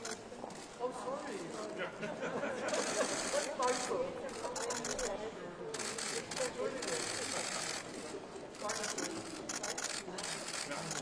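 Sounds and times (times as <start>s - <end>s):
camera shutters clicking: 8.6s - 11.0s.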